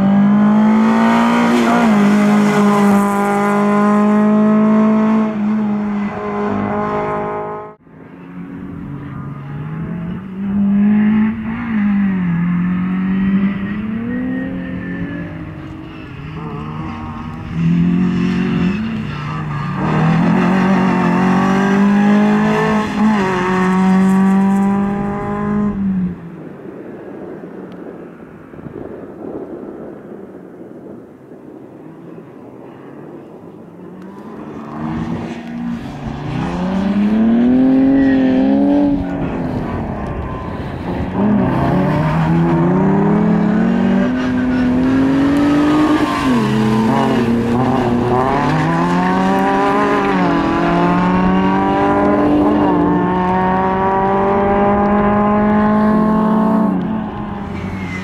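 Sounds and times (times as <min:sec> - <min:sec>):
car engine revving hard: 0:19.8 - 0:25.7, 0:41.2 - 0:56.8.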